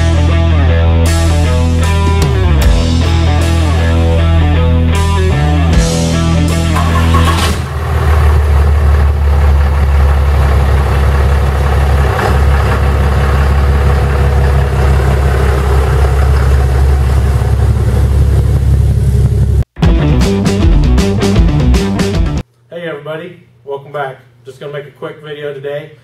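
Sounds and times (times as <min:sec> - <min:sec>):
rock music: 0:00.0 - 0:07.8, 0:19.8 - 0:22.4
truck engine idling: 0:06.4 - 0:19.8.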